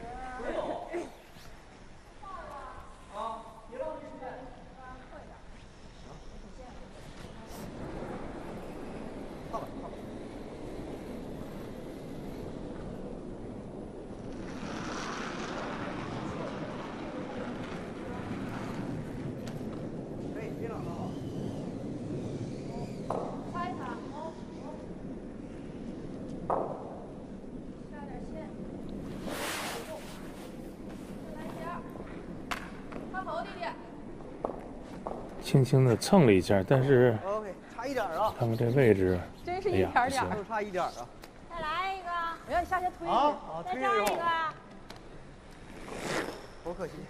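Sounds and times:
curling stone rumbling on ice: 7.6 - 36.1
brooms sweeping ice: 29.0 - 31.9.

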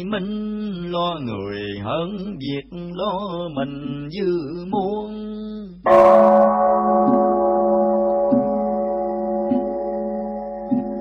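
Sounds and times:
bowl bell ringing: 5.9 - 11.0.

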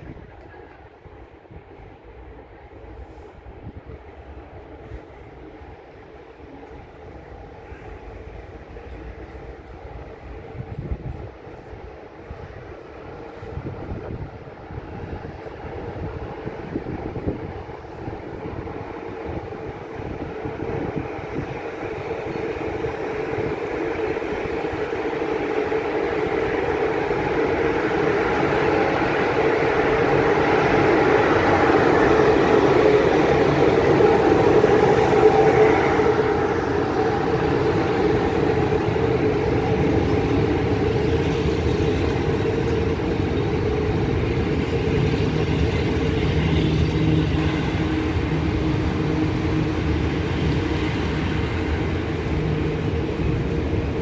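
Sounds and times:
locomotive hum: 0.0 - 54.0
passenger train rolling past: 0.0 - 54.0.

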